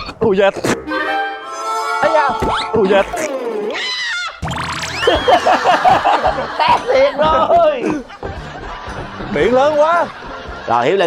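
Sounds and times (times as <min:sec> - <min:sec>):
cartoonish boing-like glides: 0:04.4 - 0:05.5.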